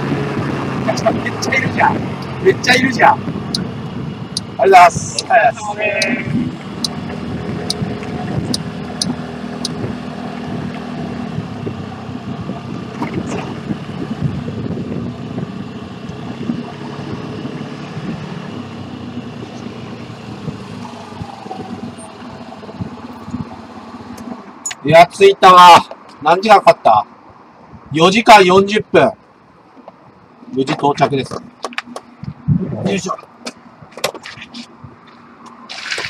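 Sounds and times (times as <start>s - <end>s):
road and wind noise: 0.0s - 36.0s.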